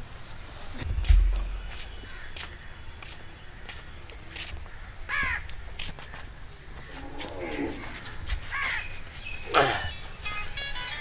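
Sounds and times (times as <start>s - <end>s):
low background rumble: 0.7s - 2.3s
bird calls: 1.0s - 11.0s.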